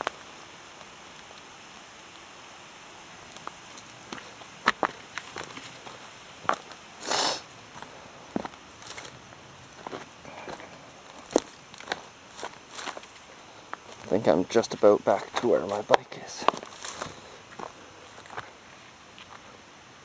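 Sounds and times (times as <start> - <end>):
faint steady hiss: 0.0 - 20.0
footsteps on forest path: 3.4 - 19.6.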